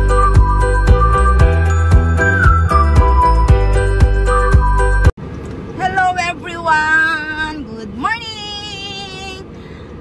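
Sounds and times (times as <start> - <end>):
music: 0.0 - 5.1
car cabin road noise: 3.8 - 10.0
woman talking: 5.8 - 9.5.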